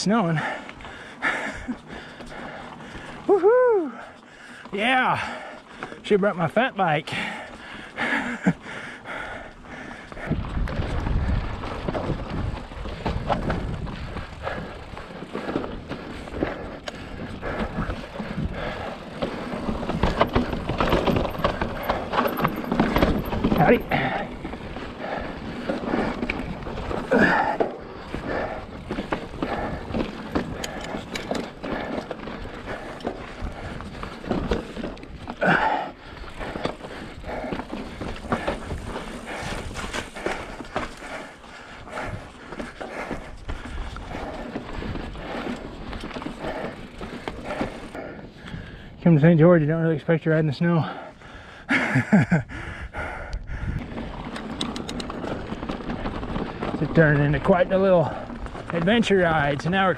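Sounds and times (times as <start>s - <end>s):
mountain bike rattling over rocks: 0.0s - 3.4s, 4.0s - 51.2s, 53.6s - 59.9s.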